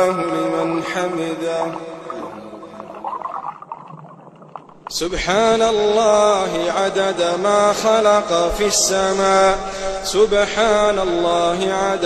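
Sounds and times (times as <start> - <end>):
person chanting recitation: 0.0 - 3.0, 4.9 - 12.0.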